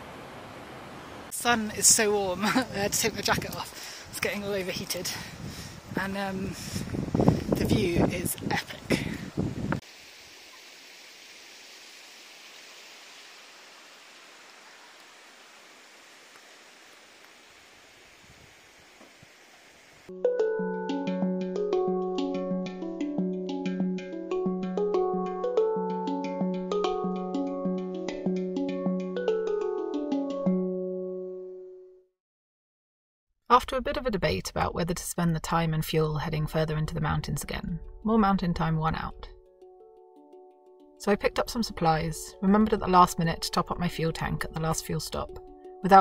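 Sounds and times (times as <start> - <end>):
faint steady hiss: 8.4 - 20.1
handpan notes ringing: 20.1 - 31.3.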